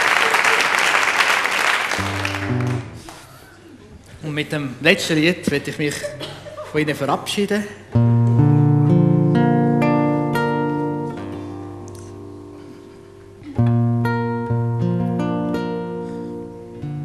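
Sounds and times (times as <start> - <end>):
fingerstyle acoustic guitar: 2.0 - 3.3, 7.9 - 17.0.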